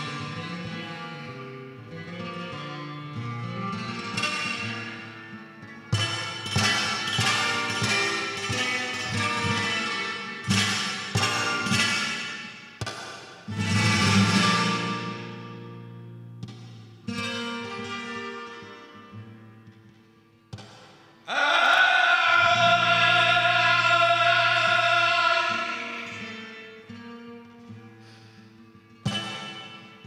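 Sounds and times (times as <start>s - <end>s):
flamenco guitar playing: 0.0s - 30.0s.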